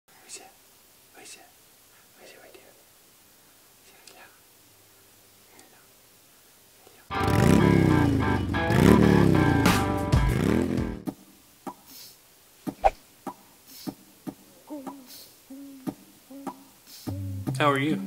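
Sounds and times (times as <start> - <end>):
faint whispering: 0.1 - 2.9, 3.8 - 4.4, 5.4 - 6.0, 6.8 - 7.1, 14.6 - 17.1.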